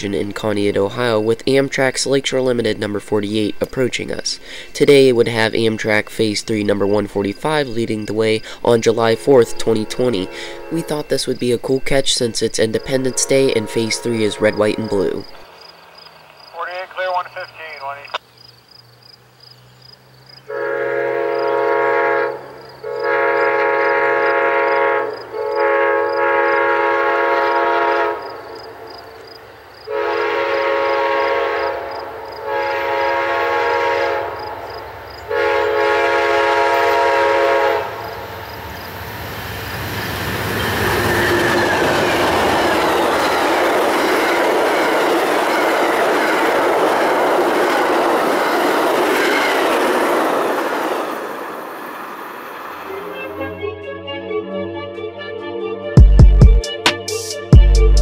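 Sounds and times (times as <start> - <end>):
train passing: 0.0 - 57.6
crossing bell ringing: 8.1 - 15.4
train horn blasts: 9.0 - 11.1, 12.8 - 15.4, 20.5 - 29.0, 29.9 - 38.6.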